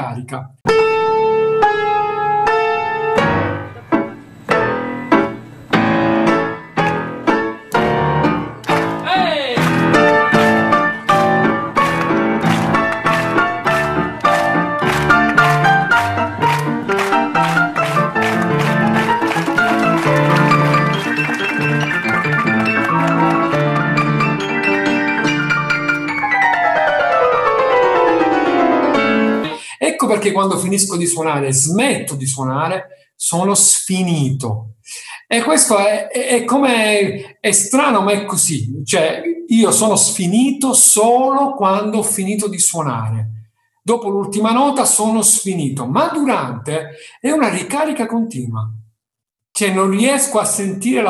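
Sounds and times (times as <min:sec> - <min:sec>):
grand piano chords and notes: 0:00.7 - 0:29.7.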